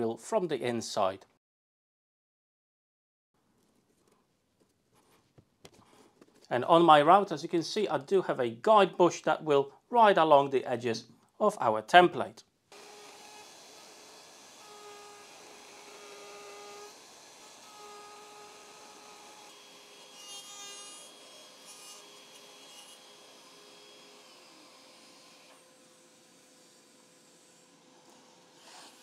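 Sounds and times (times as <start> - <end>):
router motor whining: 12.7 - 26.8
router bit cutting wood: 12.7 - 29.0.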